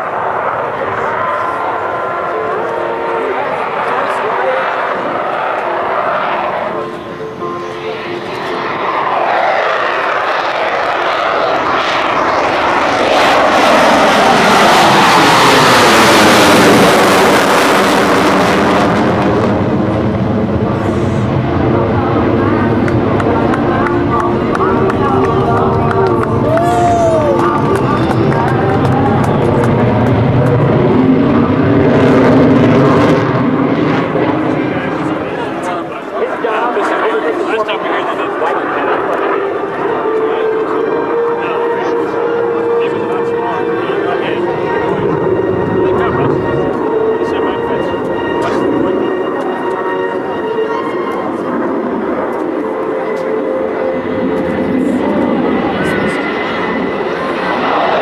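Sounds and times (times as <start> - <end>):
jet engine passing: 0.0 - 58.0.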